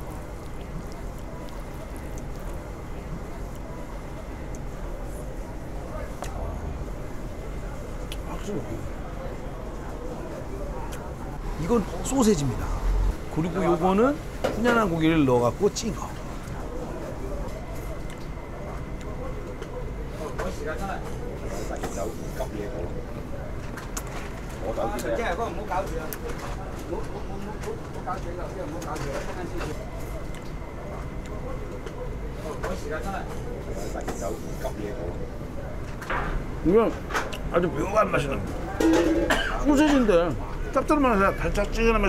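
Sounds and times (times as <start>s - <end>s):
eatery background noise: 0.0s - 42.0s
murmur of diners talking: 0.0s - 42.0s.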